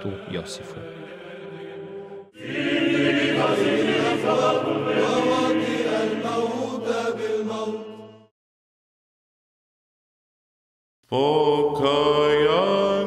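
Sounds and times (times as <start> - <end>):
low vocal drone: 0.0 - 8.3
male choir chanting: 0.0 - 8.3, 11.1 - 13.0.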